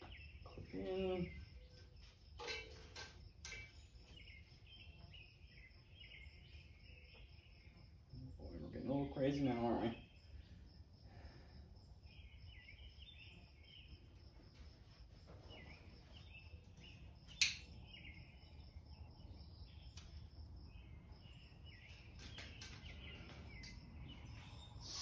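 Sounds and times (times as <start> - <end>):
birds chirping: 0.0 - 25.0.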